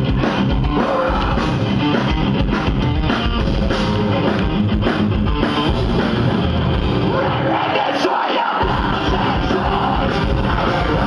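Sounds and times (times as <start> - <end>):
bass and drums: 0.0 - 11.0
distorted electric guitars: 0.0 - 11.0.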